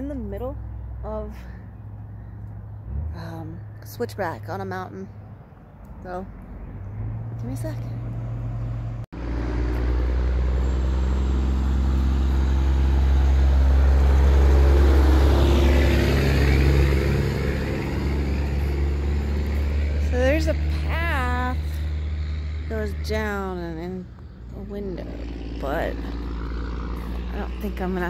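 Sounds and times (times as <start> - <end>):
vehicle engine rumble passing: 0.0 - 28.0.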